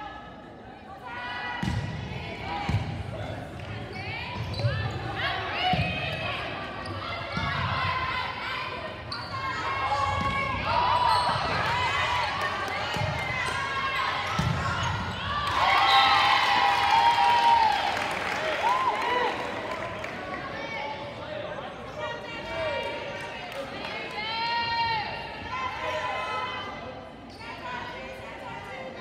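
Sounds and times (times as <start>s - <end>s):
sneakers squeaking on floor: 3.6s - 7.6s, 9.1s - 11.7s, 13.0s - 15.3s.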